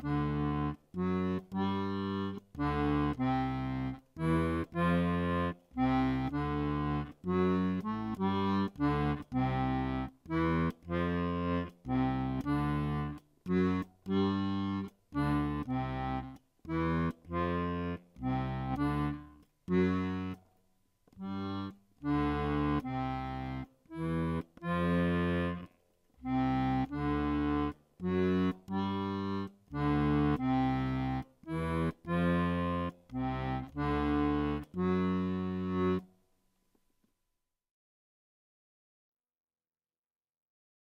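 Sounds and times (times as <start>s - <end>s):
accordion playing salsa: 0.0s - 20.4s, 21.2s - 36.1s.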